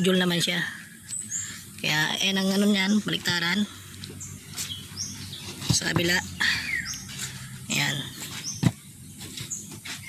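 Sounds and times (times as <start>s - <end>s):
faint bird chirps: 0.4s - 10.0s.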